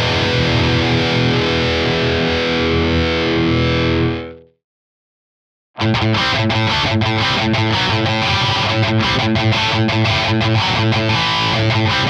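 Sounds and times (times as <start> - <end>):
distorted electric guitar chord: 0.0 - 4.5, 5.8 - 12.0.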